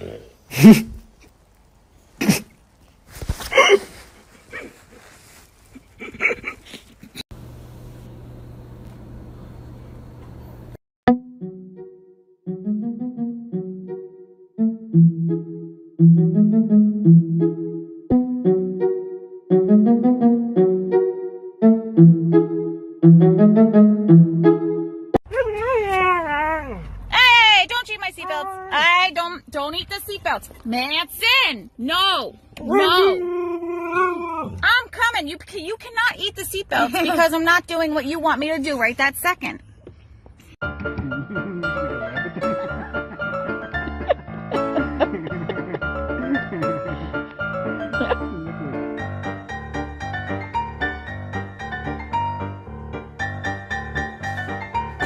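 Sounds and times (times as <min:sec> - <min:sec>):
dog whine-howl: 0:32.6 - 0:34.6.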